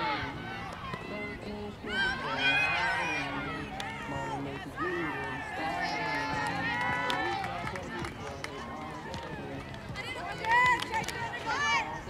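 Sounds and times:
girls shouting and cheering: 0.0 - 8.1, 9.9 - 12.0.

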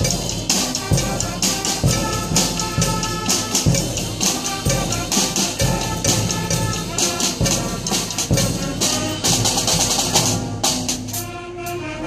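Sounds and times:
drum-kit beat: 0.0 - 11.3
brass lines: 0.0 - 12.0.

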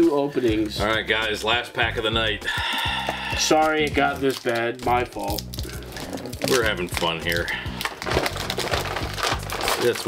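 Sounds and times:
foil wrapper crinkling and tearing: 2.7 - 10.0.

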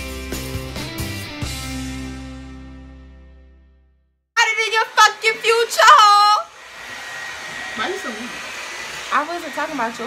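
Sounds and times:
hair dryer blowing: 4.4 - 10.0.

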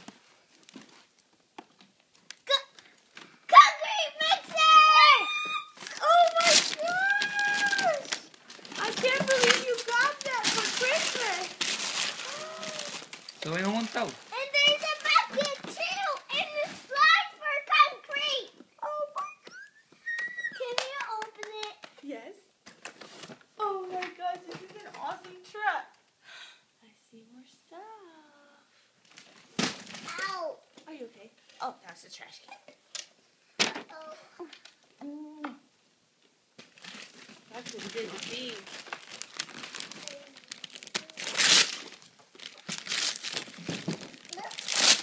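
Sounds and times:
toy packaging rustling: 0.4 - 18.3, 36.6 - 45.0.

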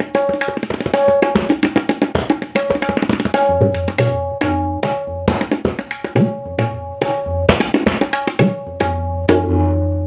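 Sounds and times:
tabla bass strokes: 8.4 - 10.0.

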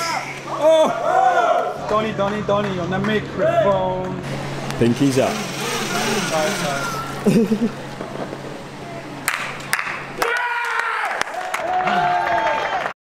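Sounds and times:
low steady hum: 0.0 - 10.3
scattered clapping: 1.8 - 4.2, 9.2 - 13.0
onlookers calling out and cheering: 10.2 - 12.9.

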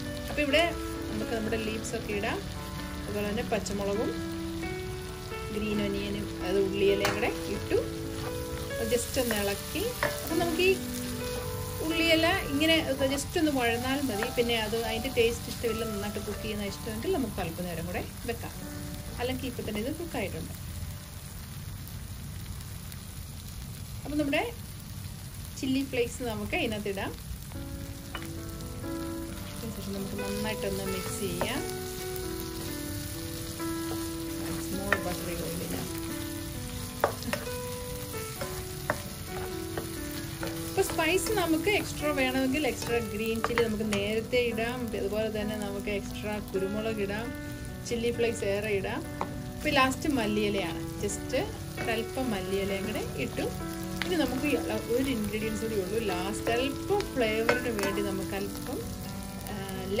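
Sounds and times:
background music with held notes: 0.0 - 21.0, 27.4 - 60.0
food sizzling in a frying pan: 0.0 - 60.0
spatula scraping and tapping pan: 9.2 - 10.4, 37.0 - 37.6, 57.4 - 58.1.

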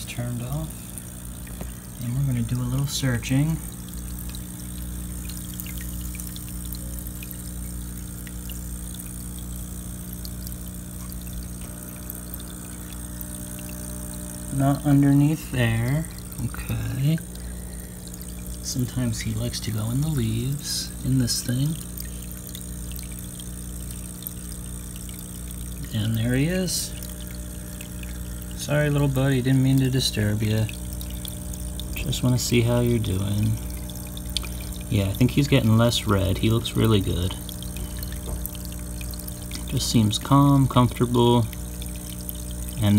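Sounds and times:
air pump humming: 0.0 - 42.9
water bubbling and trickling: 0.0 - 42.9.

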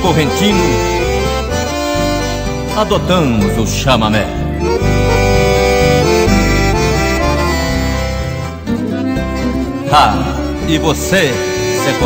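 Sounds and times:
accordion folk music: 0.0 - 12.0
low bass line: 0.0 - 12.0.

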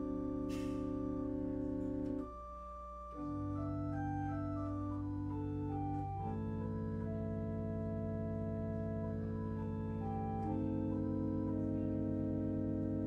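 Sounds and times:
organ playing held chords: 0.0 - 13.0.

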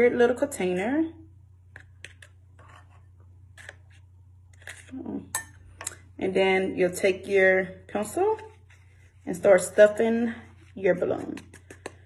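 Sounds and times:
low steady hum: 0.0 - 12.0
metal spoon scooping flour: 8.0 - 12.0
spoon tapping plastic funnel: 11.2 - 12.0.

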